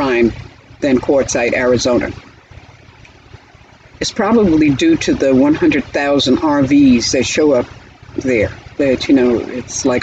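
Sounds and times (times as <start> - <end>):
low hum with soft hiss: 0.0 - 10.0.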